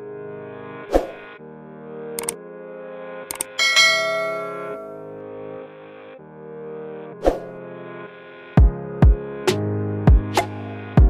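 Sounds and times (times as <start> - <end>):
background music: 0.0 - 11.0
double mouse click: 3.3 - 3.6
notification bell ding: 3.6 - 5.1.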